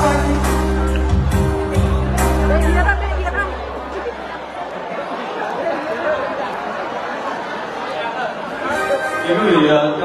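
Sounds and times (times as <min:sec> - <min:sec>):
band bass: 0:00.0 - 0:04.2
crowd murmur of voices: 0:00.0 - 0:10.0.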